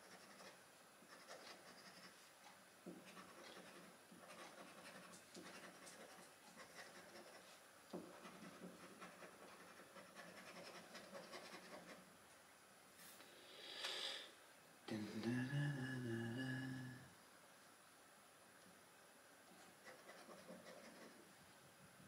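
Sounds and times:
coin scratching a scratchcard: 0.0s - 2.1s, 3.1s - 7.4s, 8.1s - 12.0s, 19.8s - 21.2s
short breathy hiss: 13.0s - 14.4s
man humming: 14.9s - 17.1s.

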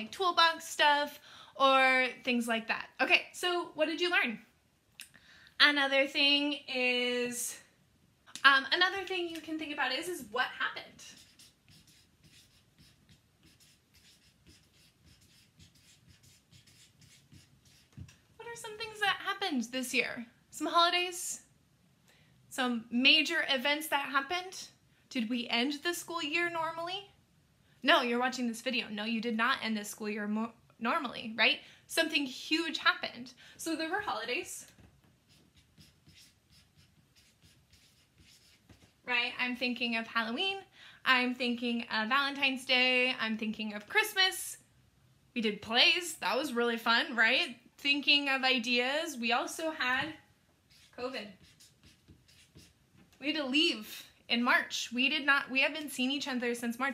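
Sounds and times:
marker writing on paper: 11.0s - 18.2s, 35.2s - 39.0s, 50.7s - 52.8s.

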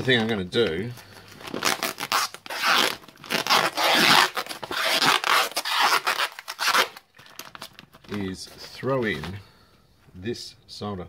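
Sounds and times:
newspaper crinkling: 0.0s - 9.4s
tape ripping off roll: 1.4s - 8.2s.

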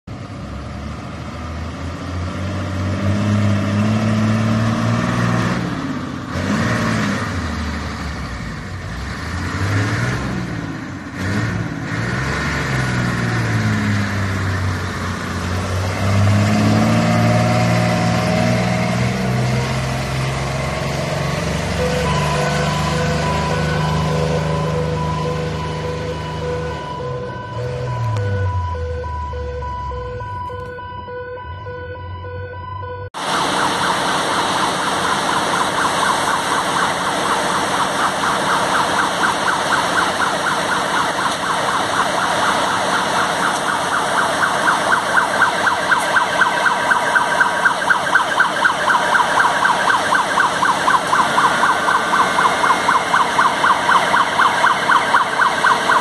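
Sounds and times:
fire engine revving: 0.0s - 56.0s.

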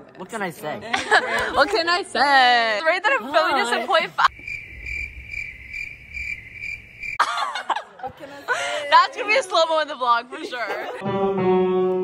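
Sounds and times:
cricket chirping: 4.2s - 7.2s.

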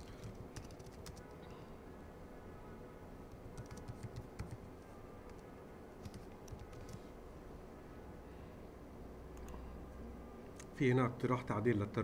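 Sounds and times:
computer keyboard typing: 0.0s - 1.4s, 3.3s - 4.7s, 6.0s - 7.0s.

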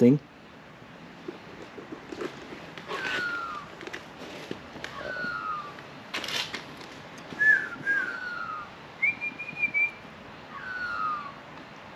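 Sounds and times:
person whistling: 7.4s - 8.2s.

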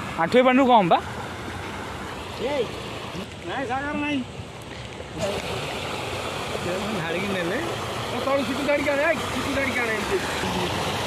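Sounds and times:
fast-flowing water rushing: 0.0s - 11.0s.

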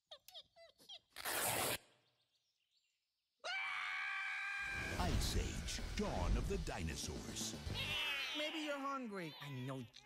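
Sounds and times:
cartoon character screaming: 3.4s - 4.9s, 7.8s - 9.9s.

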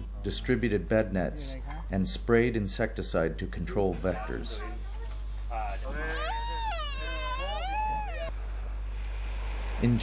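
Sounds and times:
toddler wailing: 5.9s - 8.3s.

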